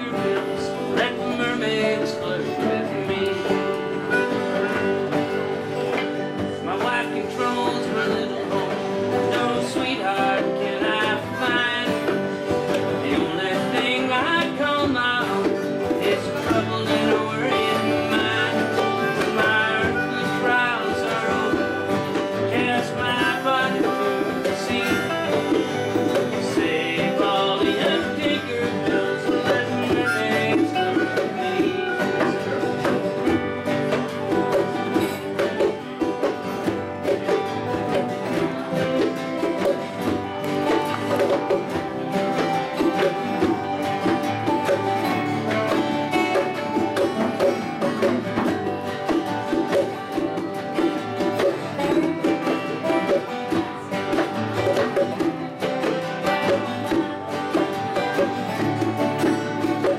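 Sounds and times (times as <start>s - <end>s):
acoustic guitars strumming: 0.0s - 59.9s
harmonica: 0.0s - 59.9s
whistle melody: 0.3s - 8.6s, 9.2s - 37.0s, 38.0s - 53.2s.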